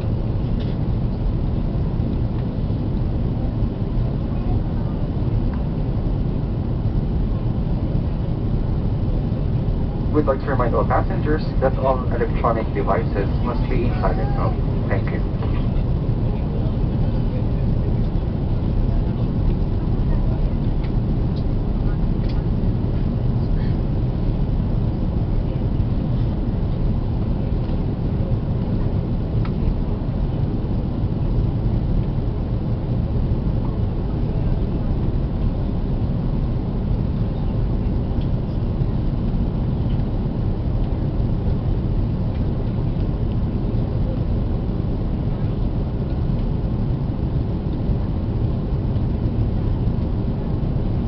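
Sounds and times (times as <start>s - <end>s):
jet engines rumbling: 0.0s - 51.0s.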